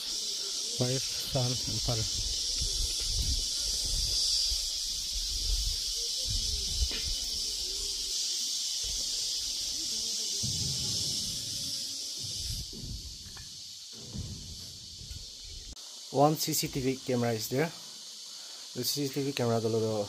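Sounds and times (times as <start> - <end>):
insects droning: 0.0 - 20.0.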